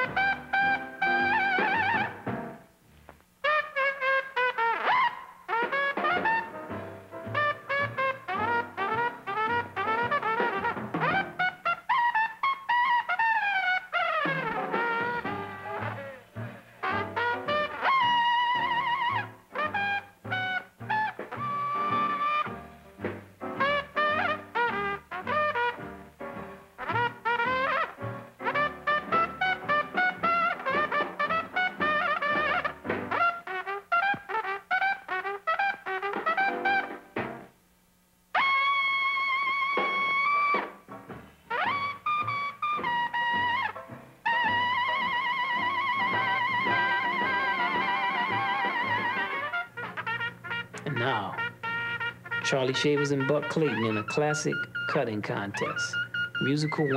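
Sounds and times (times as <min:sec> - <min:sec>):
band bass and rhythm: 0:00.0 - 0:02.7, 0:05.6 - 0:12.4, 0:13.4 - 0:37.5, 0:39.3 - 0:56.9
jazz cornet blues solo: 0:00.0 - 0:37.6, 0:38.3 - 0:56.9.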